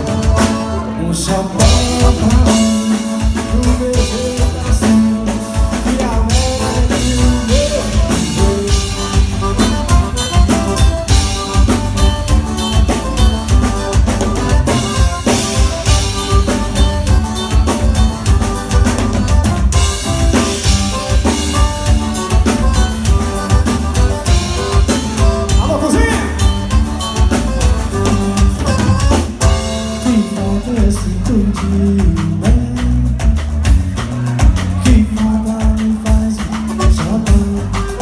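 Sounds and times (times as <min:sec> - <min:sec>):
accordion: 0:00.0 - 0:38.0
acoustic guitar: 0:00.0 - 0:38.0
bass: 0:00.0 - 0:38.0
drum kit beat: 0:00.0 - 0:38.0.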